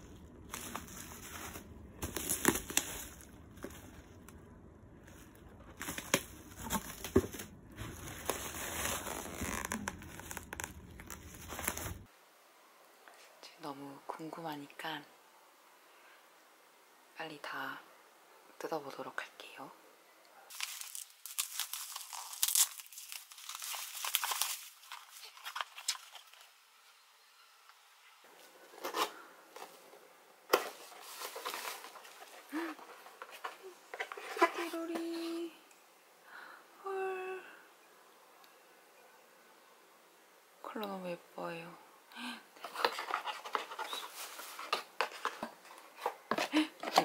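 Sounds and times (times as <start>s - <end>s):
bubble wrap crinkling and tearing: 0.0s - 4.4s, 5.0s - 12.1s, 20.5s - 26.5s, 30.5s - 34.6s, 42.6s - 47.0s.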